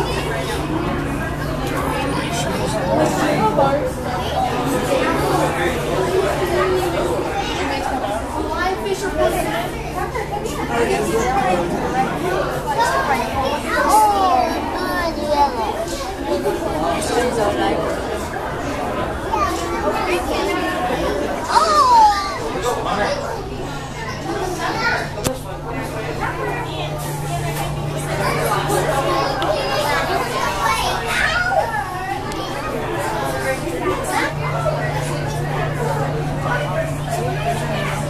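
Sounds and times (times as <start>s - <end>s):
background chatter: 0.0s - 38.0s
children calling and talking: 0.0s - 38.0s
steady low hum: 0.0s - 38.0s.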